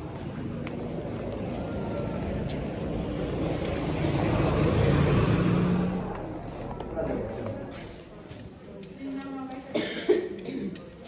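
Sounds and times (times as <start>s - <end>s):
low street rumble: 0.0s - 9.0s
faint distant voices: 0.0s - 11.0s.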